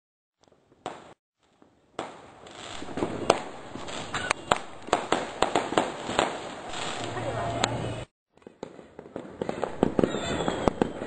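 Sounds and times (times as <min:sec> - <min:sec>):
fireworks bangs and crackle: 0:00.5 - 0:11.0.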